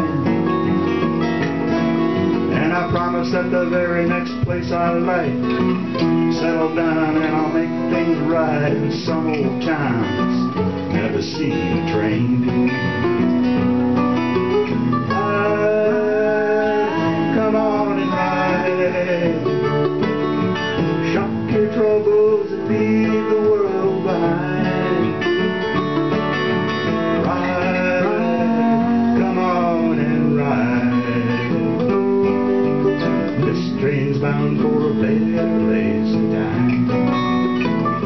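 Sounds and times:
acoustic guitars strumming: 0.0 - 38.0
mandolin playing: 0.0 - 38.0.

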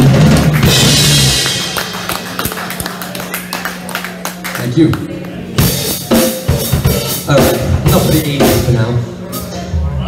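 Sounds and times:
rock band final chord: 0.0 - 3.5, 5.6 - 9.0.

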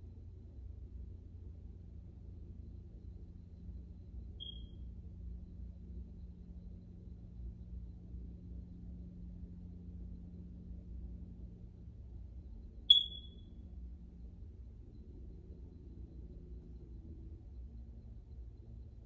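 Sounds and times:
faint low hum: 0.0 - 19.0
high-pitched electronic beep: 4.4 - 4.6, 12.9 - 13.4.

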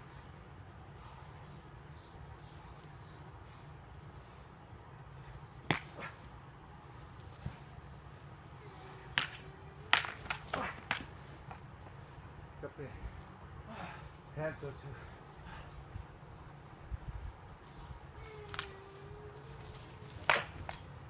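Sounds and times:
training weapons clacking: 9.1 - 11.6.

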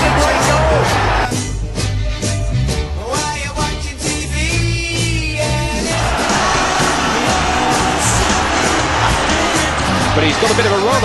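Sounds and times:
stadium crowd roar: 0.0 - 1.3, 5.7 - 11.0
background music: 0.0 - 11.0.

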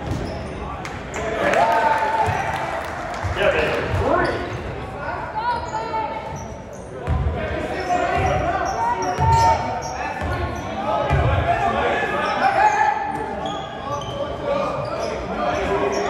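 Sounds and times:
sneakers squeaking on floor: 0.0 - 0.8, 3.3 - 4.8, 5.4 - 11.4, 12.2 - 16.0
voices echoing: 0.0 - 16.0
basketball bouncing on court: 7.0 - 7.4, 11.1 - 11.4.

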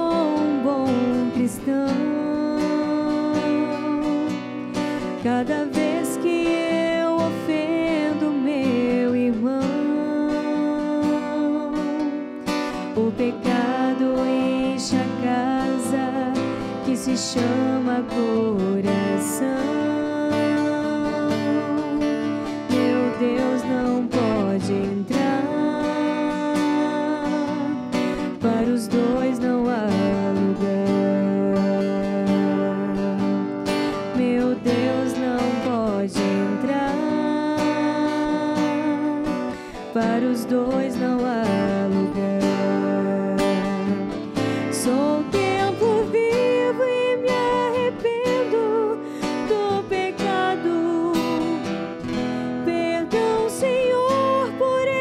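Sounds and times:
acoustic guitar accompaniment: 0.0 - 55.0.

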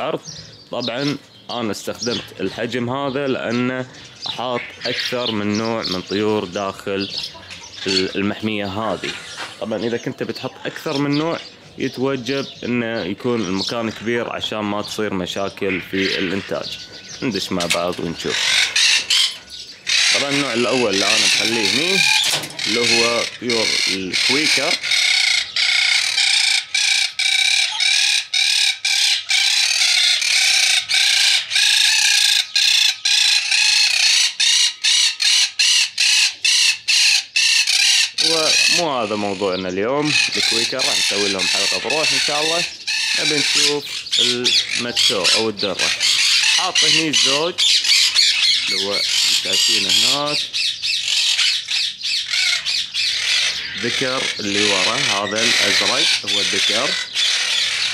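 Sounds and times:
parakeets calling: 0.0 - 57.9
parrots squawking: 0.0 - 57.9.

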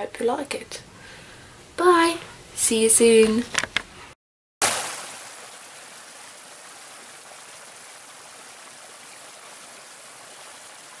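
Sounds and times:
stream splashing over rocks: 4.6 - 11.0.

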